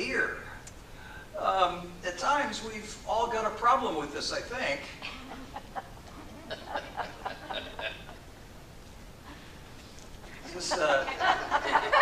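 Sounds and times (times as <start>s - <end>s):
people chuckling: 5.0s - 8.3s, 10.2s - 12.0s.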